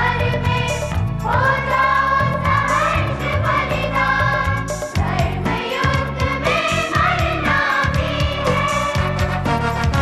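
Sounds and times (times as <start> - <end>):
choir singing: 0.0 - 9.2
steady percussion beat: 0.0 - 10.0.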